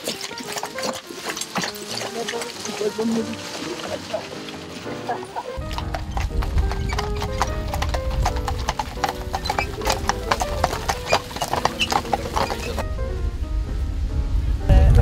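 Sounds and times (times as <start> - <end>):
hooves clip-clopping on gravel: 0.0 - 12.8
music: 0.0 - 15.0.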